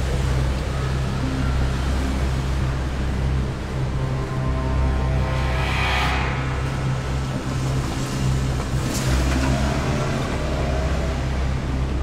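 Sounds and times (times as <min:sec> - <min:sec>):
low steady drone: 0:00.0 - 0:12.0
rising whoosh: 0:03.0 - 0:09.2.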